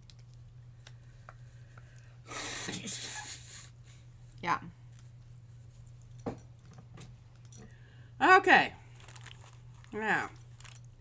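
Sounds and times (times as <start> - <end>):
person blowing nose: 2.3 - 3.7.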